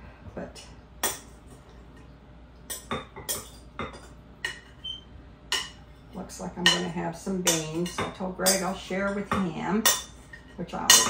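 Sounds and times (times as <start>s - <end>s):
utensil clinking against glass bowl: 6.6s - 11.0s.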